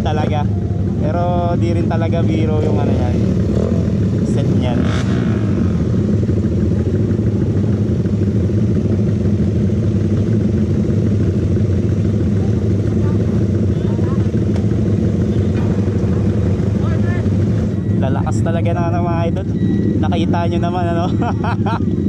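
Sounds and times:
motorcycle engines idling: 0.0 - 22.0.

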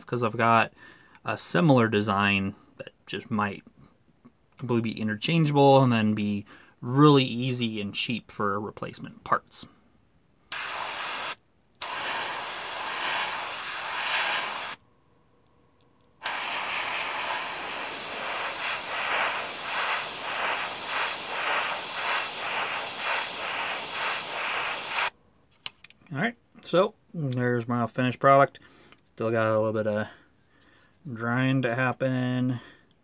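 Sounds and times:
airbrush hissing: 10.5 - 14.8, 16.2 - 25.1.

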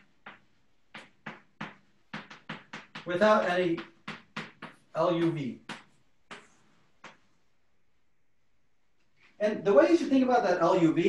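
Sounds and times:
chalk tapping on blackboard: 0.0 - 7.3.

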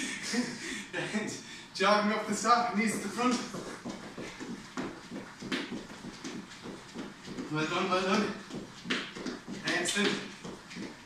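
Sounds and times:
footfalls on tiled floor: 2.9 - 11.0.

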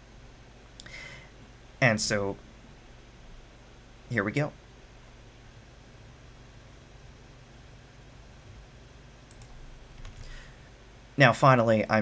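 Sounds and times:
low steady hum: 0.0 - 12.0
faint hiss: 0.7 - 11.9
soft clicks: 9.2 - 10.2.

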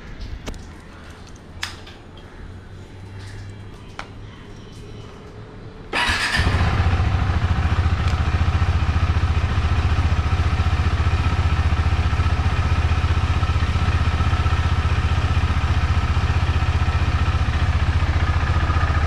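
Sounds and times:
motorcycle engine idling: 5.9 - 19.0.

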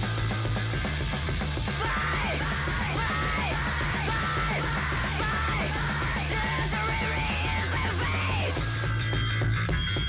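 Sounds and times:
noise-punk band playing: 0.0 - 10.0
woman shouting vocals: 1.8 - 8.5.

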